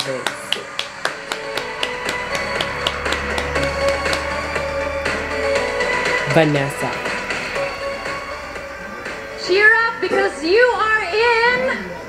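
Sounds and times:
background music with ticking beat: 0.0 - 10.6.

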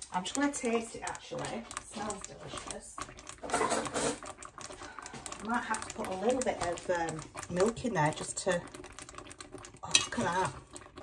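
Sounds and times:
cream sauce bubbling and popping: 0.0 - 11.0.

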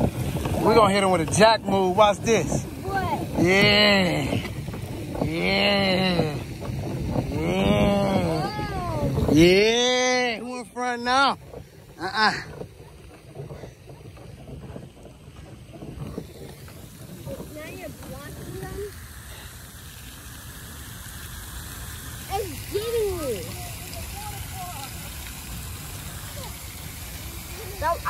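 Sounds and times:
fountain spray hiss: 0.0 - 28.0
wind rumbling on microphone: 0.0 - 28.0.

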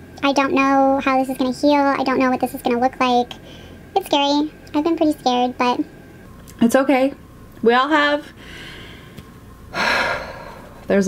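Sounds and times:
woman speaking: 6.6 - 8.4.

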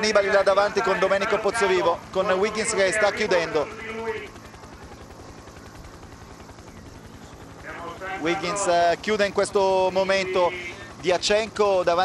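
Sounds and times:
helicopter rotor pulsing: 0.0 - 12.0.

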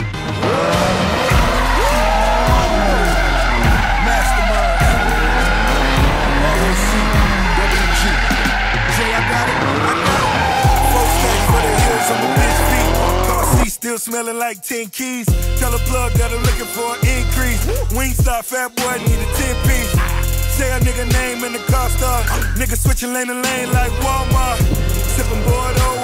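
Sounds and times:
car engine revving: 0.0 - 13.7, 23.5 - 26.0
background music with bass: 0.0 - 26.0
tyres squealing: 0.4 - 13.7, 23.4 - 26.0.

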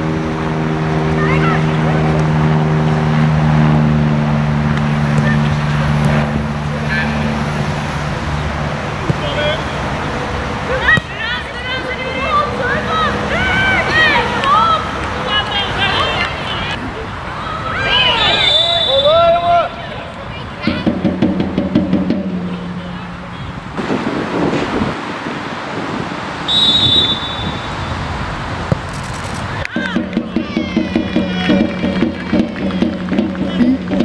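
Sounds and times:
players shouting: 8.9 - 21.6, 29.5 - 34.0
referee's whistle blasts: 18.2 - 19.3, 26.5 - 28.0.

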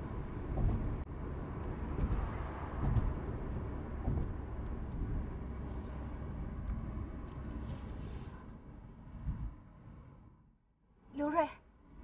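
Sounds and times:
soft low bumps: 0.0 - 5.4
car cabin road rumble: 0.0 - 8.4.

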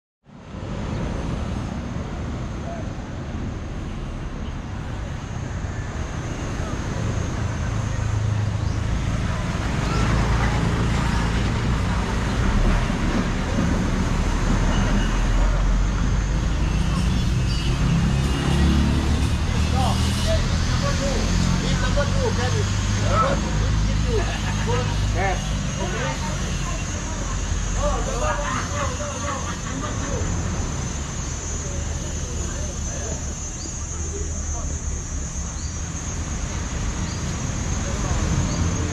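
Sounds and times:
traffic rumble: 0.2 - 38.9.

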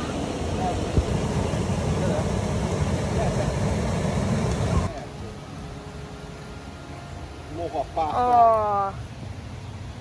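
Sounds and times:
creek water rushing over rocks: 0.0 - 10.0.

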